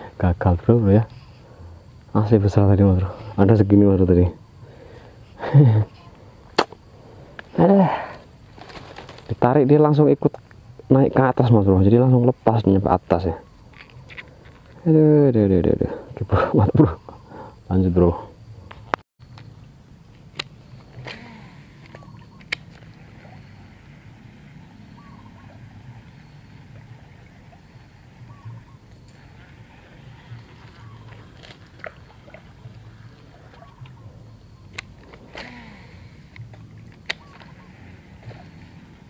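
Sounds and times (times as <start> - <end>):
fishing reel clicks: 34.7 - 37.6.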